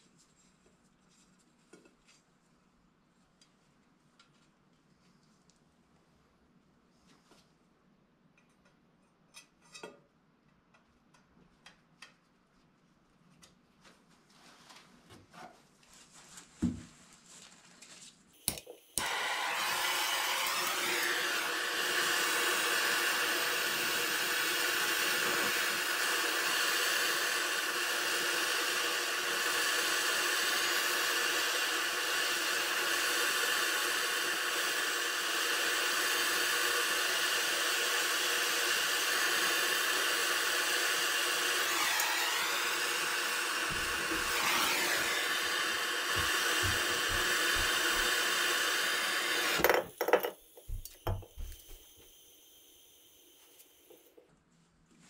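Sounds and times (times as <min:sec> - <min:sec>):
gas torch hissing: 0:18.4 - 0:49.7, 0:50.4 - 0:54.1.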